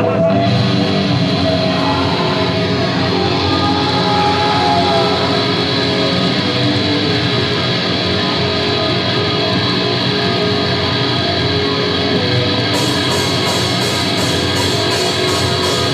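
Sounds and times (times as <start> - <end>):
metal band playing live: 0.0 - 15.9.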